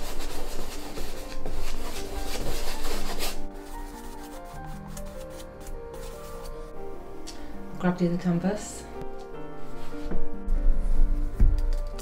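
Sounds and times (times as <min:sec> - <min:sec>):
brush scrubbing paint on canvas: 0:00.0 - 0:06.7
soft background music: 0:00.0 - 0:12.0.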